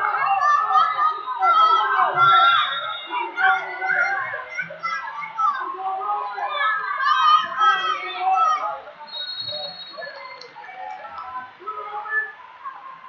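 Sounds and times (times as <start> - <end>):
crowd shouting in a hall: 0.0 - 13.0.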